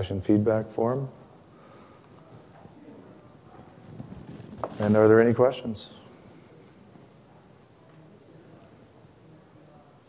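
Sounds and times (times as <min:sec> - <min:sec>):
faint indistinct voices: 0:01.2 - 0:10.0.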